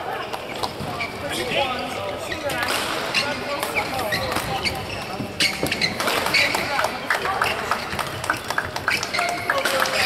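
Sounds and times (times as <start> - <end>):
voices in a hall: 0.0 - 10.0.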